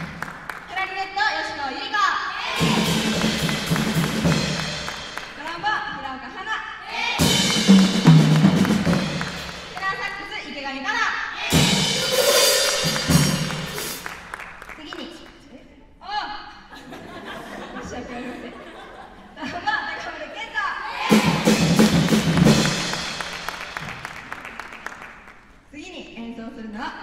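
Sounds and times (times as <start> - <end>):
jazz big band playing: 2.5 - 5.4, 7.0 - 10.0, 11.4 - 14.3, 21.1 - 24.1.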